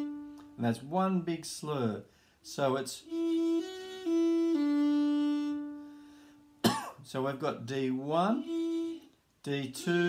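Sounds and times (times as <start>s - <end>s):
fiddle bowed notes: 0.0s - 1.2s, 2.5s - 6.6s, 7.8s - 10.0s.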